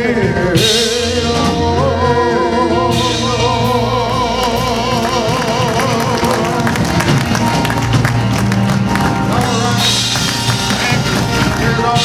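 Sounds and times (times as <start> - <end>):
gospel band with drums: 0.0 - 12.0
hand clapping: 5.0 - 12.0.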